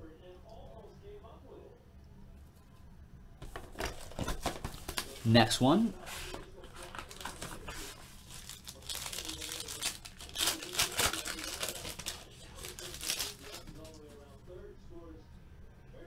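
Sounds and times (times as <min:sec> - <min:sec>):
foil wrapper tearing and crinkling: 0:06.8 - 0:14.0.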